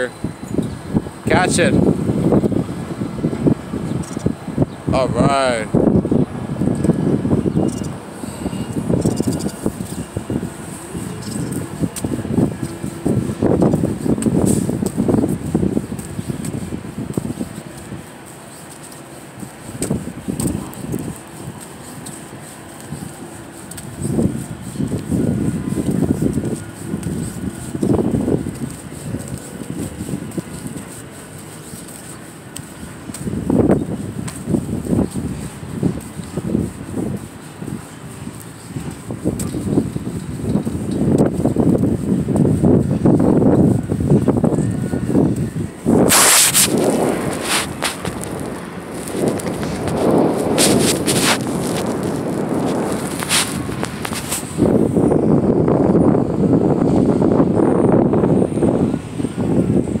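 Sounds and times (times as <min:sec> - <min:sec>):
wind on phone microphone: 0:00.0 - 1:00.0
fabric rubbing on microphone: 0:07.7 - 0:56.0.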